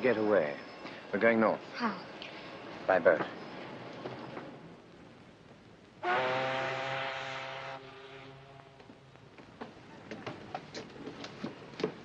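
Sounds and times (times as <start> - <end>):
ship's horn long blast: 6.0 - 8.8.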